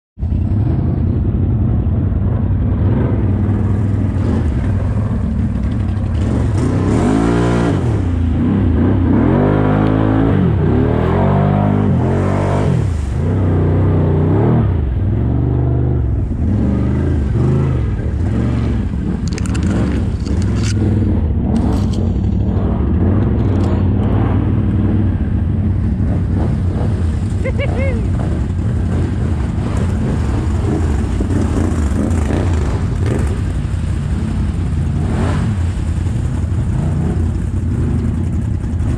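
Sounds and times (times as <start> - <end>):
atv engine revving: 0.3 - 38.9.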